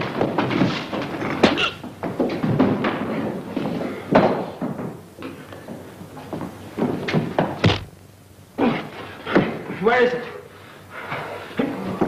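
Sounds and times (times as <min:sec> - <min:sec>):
punches and body thuds: 0:07.6 - 0:08.0.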